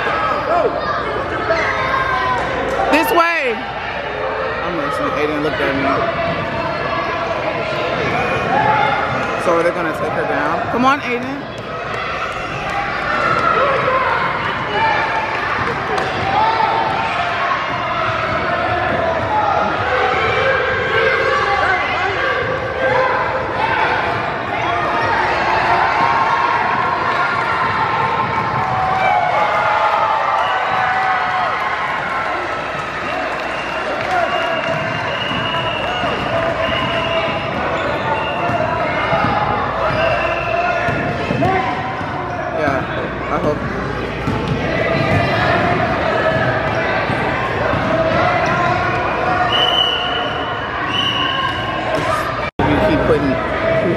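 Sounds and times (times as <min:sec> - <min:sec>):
basketballs bouncing on hardwood: 0:40.8 - 0:42.8, 0:43.4 - 0:48.8.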